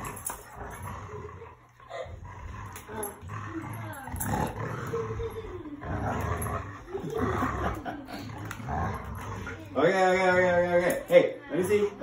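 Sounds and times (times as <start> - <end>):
dogs play-growling: 0.0 - 12.0.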